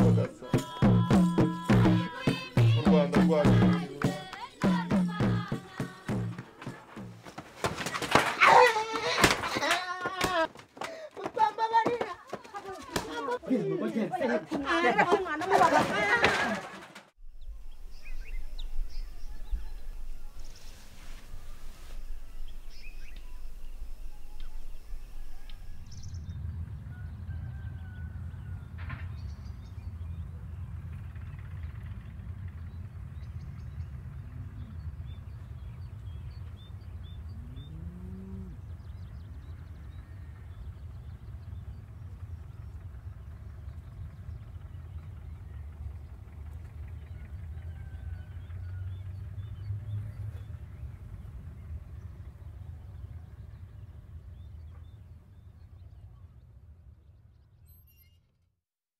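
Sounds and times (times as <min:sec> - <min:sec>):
bird chirps: 0:17.2 - 0:26.4, 0:57.5 - 0:58.3
steady low rumble: 0:17.2 - 0:27.3
low animal calls: 0:37.2 - 0:38.8.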